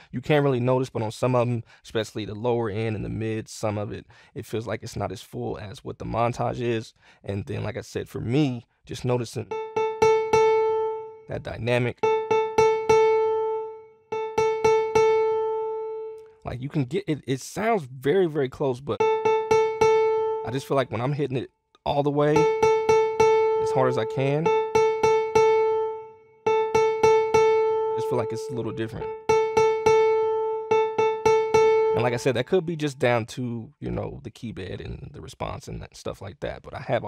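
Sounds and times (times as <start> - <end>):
piano note strikes: 9.5 - 11.3, 11.9 - 16.3, 19.0 - 21.0, 22.4 - 32.4.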